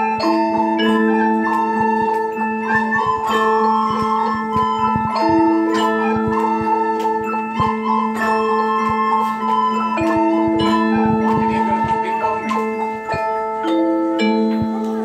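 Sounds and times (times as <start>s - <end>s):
recorder melody: 0.0s - 15.0s
wooden xylophones struck with mallets: 0.0s - 15.0s.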